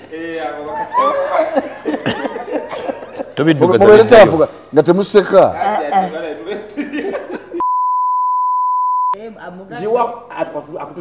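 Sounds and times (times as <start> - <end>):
test-tone beep: 7.6 - 9.2.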